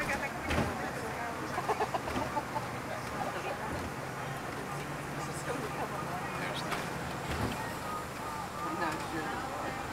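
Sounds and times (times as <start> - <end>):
road noise inside moving vehicle: 0.0 - 9.9.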